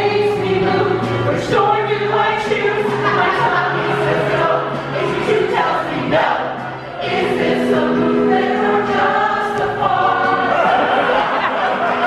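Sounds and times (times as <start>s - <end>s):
mixed chorus singing: 0.0s - 12.0s
musical accompaniment: 0.0s - 12.0s.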